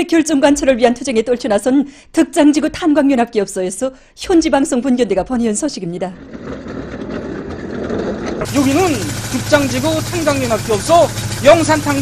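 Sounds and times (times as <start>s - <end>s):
locomotive hauling wagons: 6.2s - 12.0s.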